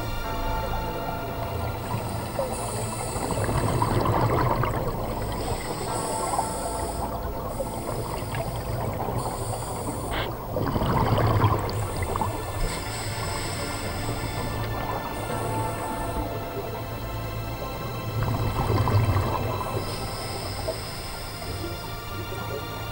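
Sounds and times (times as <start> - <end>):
exhaled bubbles rushing: 0.7 - 22.9
diver breathing through regulator: 1.6 - 22.9.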